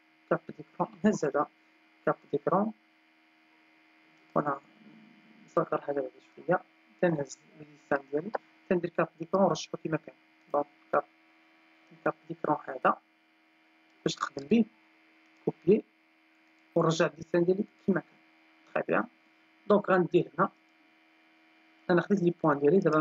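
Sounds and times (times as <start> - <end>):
electrical mains hum: 0.0 - 23.0
person speaking: 0.3 - 2.8, 4.4 - 11.1, 11.9 - 13.0, 14.1 - 14.8, 15.4 - 15.9, 16.8 - 18.1, 18.7 - 20.6, 21.9 - 23.0.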